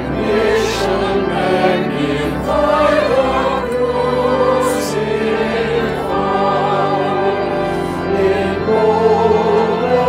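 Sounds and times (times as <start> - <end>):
instrumental accompaniment: 0.0 - 10.0
voices singing a hymn: 0.0 - 10.0.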